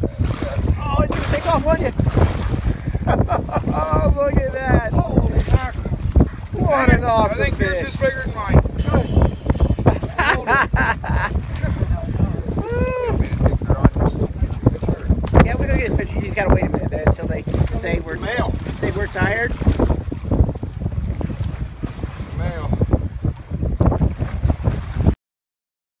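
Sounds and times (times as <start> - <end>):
wind buffeting microphone: 0.0 - 25.2.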